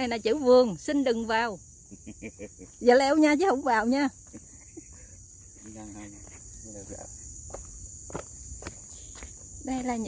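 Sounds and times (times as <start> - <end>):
insects chirring: 0.0 - 10.0
footsteps on dirt path: 4.2 - 10.0.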